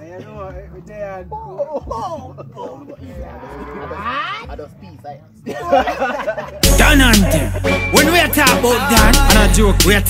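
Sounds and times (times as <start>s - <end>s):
men calling out and hollering: 0.0s - 4.8s, 5.4s - 10.0s.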